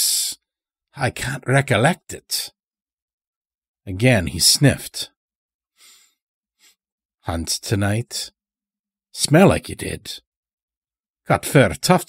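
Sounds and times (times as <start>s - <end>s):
faint breath: 5.8s - 6.8s.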